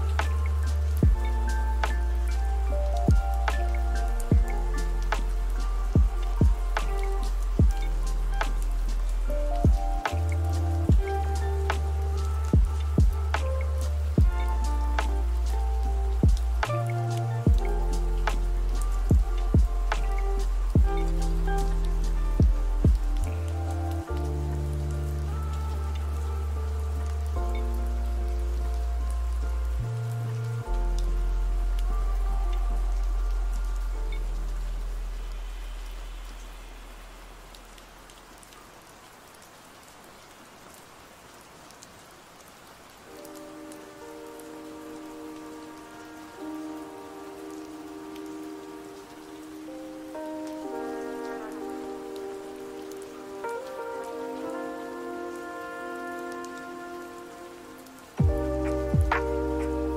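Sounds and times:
lofi hip-hop music: 0:00.0 - 0:34.6, 0:43.2 - 0:59.9
soft keyboard chords: 0:00.0 - 0:36.0, 0:43.0 - 0:59.9
steady rain: 0:00.0 - 0:59.9.

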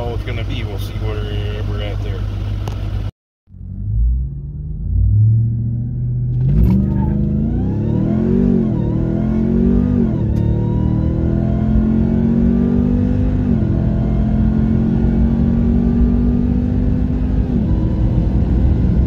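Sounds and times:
truck engine accelerating hard: 0:00.0 - 0:19.0.

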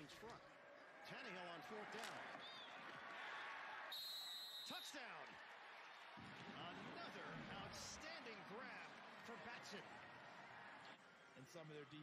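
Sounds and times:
crowd and stadium noise: 0:00.0 - 0:12.0
high whistle: 0:03.9 - 0:04.9.

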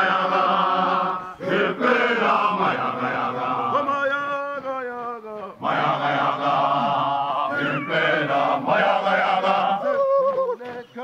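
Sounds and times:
group of voices chanting: 0:05.6 - 0:10.7.

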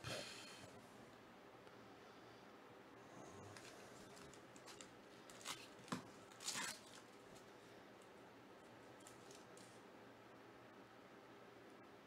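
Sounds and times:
faint wrapper crinkles: 0:03.6 - 0:08.1, 0:09.0 - 0:09.8
wrapper ripping: 0:04.2 - 0:07.2.

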